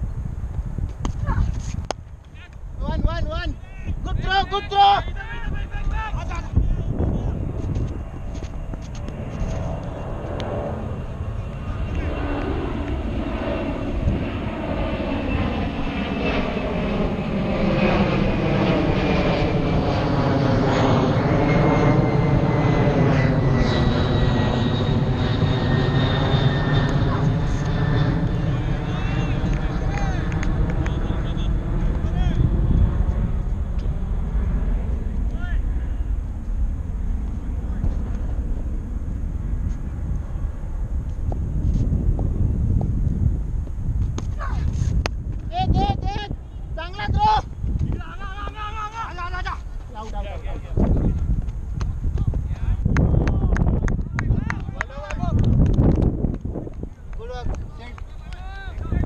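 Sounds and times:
airplane passing overhead: 0.0s - 59.0s.

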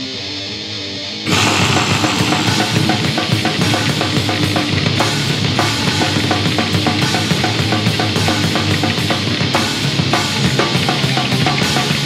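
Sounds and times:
distorted electric guitar: 0.0s - 12.0s
metal band with drums: 1.3s - 12.0s.

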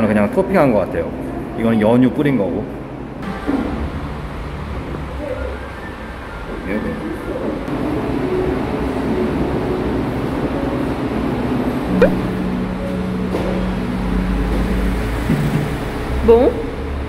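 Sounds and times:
shop room noise: 0.0s - 17.0s
brief sharp sound: 12.0s - 12.3s.

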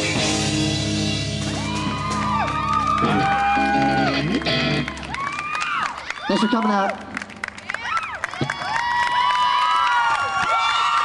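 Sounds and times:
audience cheering and screaming: 1.3s - 11.0s.

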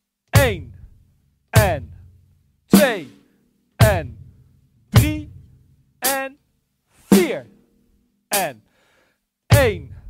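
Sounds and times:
hi-hat and drum strokes: 2.7s - 4.4s, 5.0s - 6.3s, 7.0s - 7.5s.

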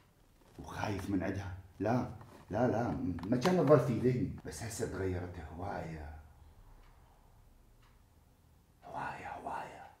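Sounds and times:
man whispering: 8.8s - 10.0s.

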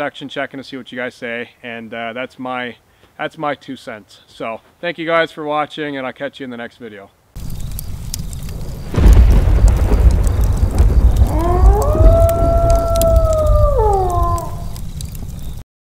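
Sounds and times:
steady rain: 7.4s - 15.6s
thunder rumble: 7.4s - 15.6s
wolf howling: 11.2s - 14.8s.

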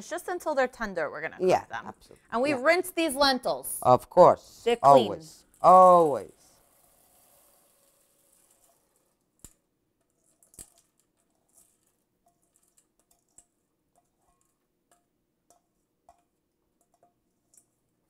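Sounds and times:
lentils clicking into a pot: 5.4s - 17.8s.

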